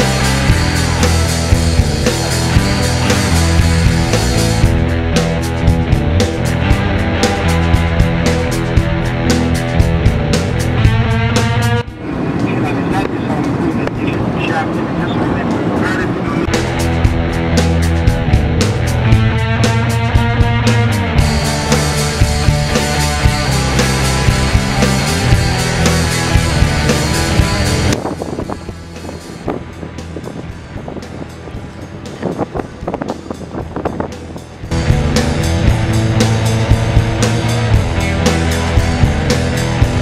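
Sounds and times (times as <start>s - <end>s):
rock music: 0.0s - 12.8s, 16.4s - 40.0s
steady low tone: 0.0s - 15.4s, 16.3s - 40.0s
road and engine rumble: 0.0s - 40.0s
faint voices: 11.8s - 16.5s.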